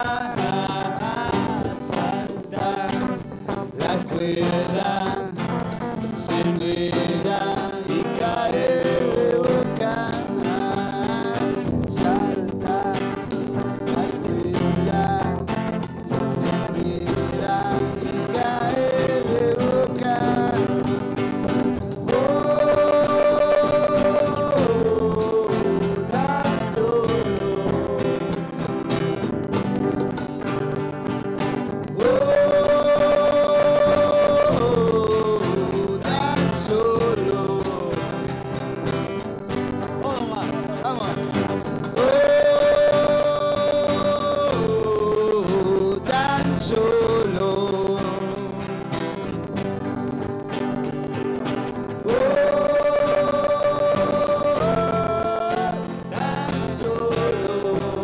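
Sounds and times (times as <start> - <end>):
electric guitar: 0.0 - 58.0
strummed acoustic guitars: 0.0 - 58.0.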